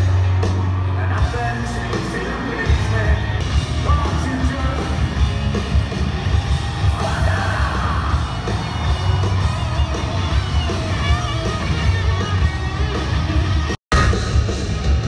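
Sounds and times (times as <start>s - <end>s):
people yelling: 0.0s - 14.2s
bass guitar: 0.0s - 15.0s
heavy drums: 0.0s - 15.0s
rock band playing live: 0.0s - 15.0s.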